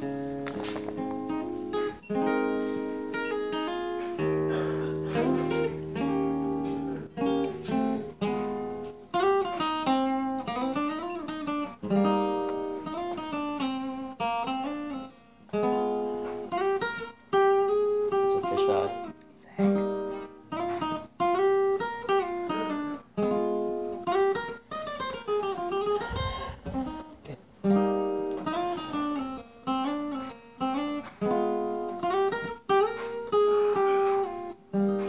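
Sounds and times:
acoustic guitar picking and strumming: 0:00.0 - 0:35.0.

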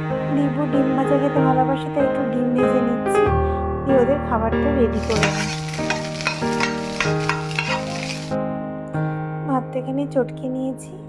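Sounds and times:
background music: 0:00.0 - 0:11.0
egg sizzling in a pan: 0:05.0 - 0:08.4
spatula scraping a pan: 0:05.0 - 0:08.4.

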